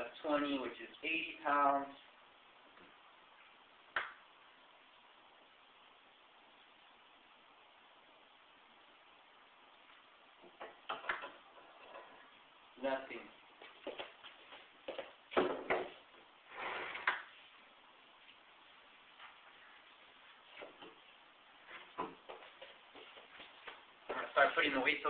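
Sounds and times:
man speaking: 0:00.0 - 0:02.0, 0:12.8 - 0:13.4, 0:24.1 - 0:25.0.

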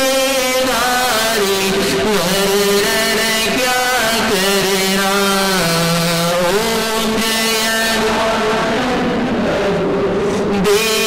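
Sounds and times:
man singing long held notes: 0:00.0 - 0:11.0.

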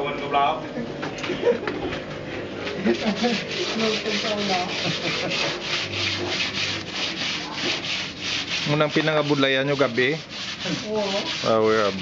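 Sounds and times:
scraping strokes on hard surface: 0:02.7 - 0:12.0.

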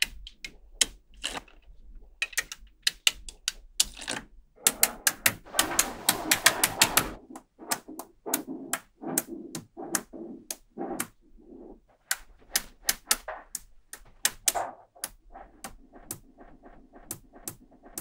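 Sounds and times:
magnetic balls clicking together: 0:00.0 - 0:18.0.

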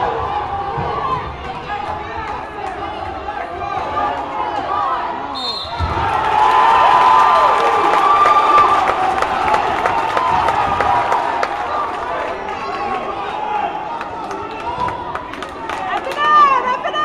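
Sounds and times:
spectators yelling and cheering: 0:00.0 - 0:17.0.

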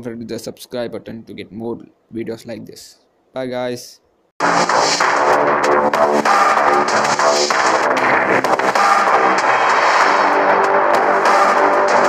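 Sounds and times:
loud background music: 0:04.4 - 0:12.0.

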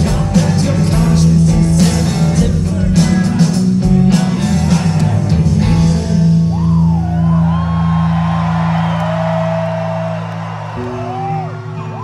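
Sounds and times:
electric guitars and bass chord ringing: 0:00.0 - 0:12.0
audience whooping and shouting: 0:06.4 - 0:12.0.

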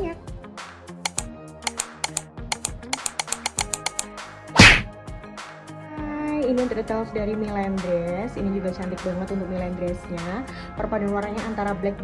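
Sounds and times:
background music: 0:00.0 - 0:12.0
sharp clicks: 0:01.1 - 0:04.1.

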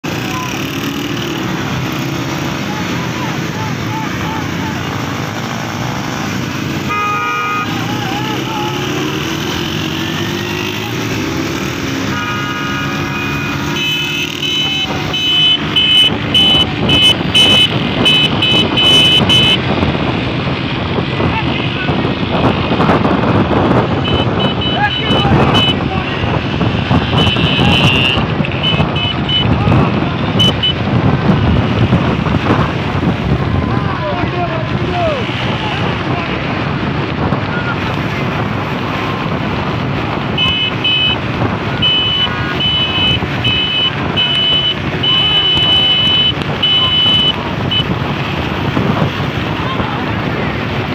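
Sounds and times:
motorcycles running: 0:00.0 - 0:50.9
vehicle horns beeping: 0:06.7 - 0:09.2, 0:11.5 - 0:19.7, 0:23.9 - 0:32.0, 0:40.3 - 0:48.6.

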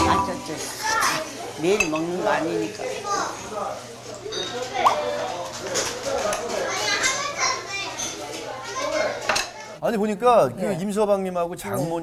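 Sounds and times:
background chatter: 0:00.0 - 0:12.0
dishes and cutlery clinking: 0:01.7 - 0:02.2, 0:04.1 - 0:06.7, 0:09.2 - 0:09.6.

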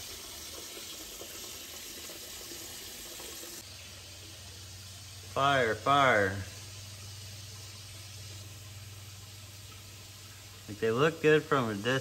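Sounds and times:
water trickling and splashing: 0:00.0 - 0:12.0.

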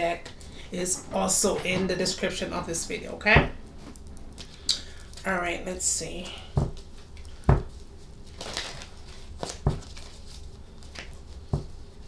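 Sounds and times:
cards being shuffled: 0:06.7 - 0:11.8.

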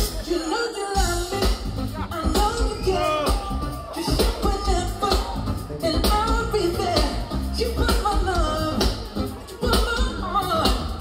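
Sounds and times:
live band music: 0:00.0 - 0:11.0.

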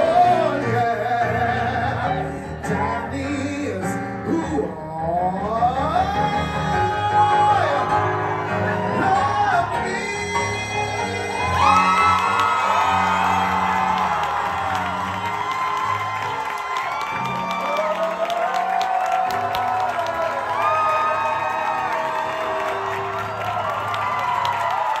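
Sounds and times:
man singing into a microphone: 0:00.0 - 0:13.4
crowd cheering and whooping: 0:06.7 - 0:09.8, 0:10.8 - 0:25.0.

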